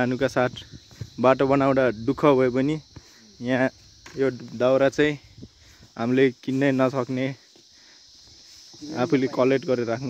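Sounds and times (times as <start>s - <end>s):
high-pitched insect chorus: 0.0s - 10.0s
person speaking: 8.7s - 10.0s.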